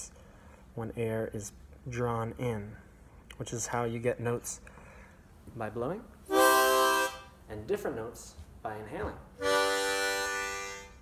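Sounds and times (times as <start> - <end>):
harmonica draw chord: 6.3 - 7.4, 9.4 - 11.0.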